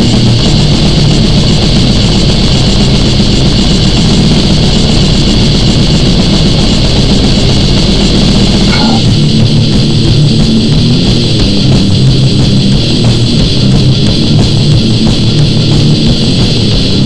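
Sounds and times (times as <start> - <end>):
distorted guitars: 0.0 - 17.0
drums: 0.0 - 17.0.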